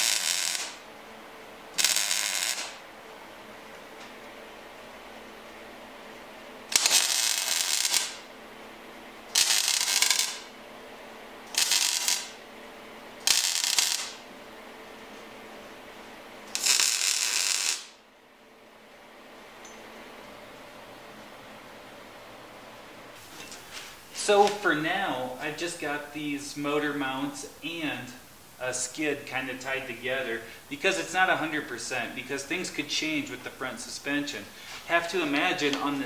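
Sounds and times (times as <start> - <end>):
welding arc crackle: 0.0 - 0.9, 1.8 - 2.8, 6.7 - 8.3, 9.3 - 10.6, 11.5 - 12.4, 13.2 - 14.2, 16.5 - 18.0.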